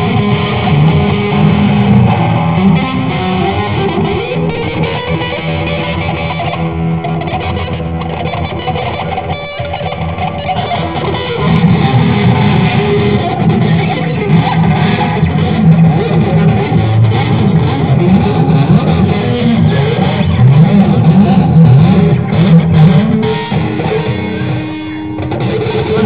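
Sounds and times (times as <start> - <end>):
electric guitar through amplifier: 0.0 - 26.0.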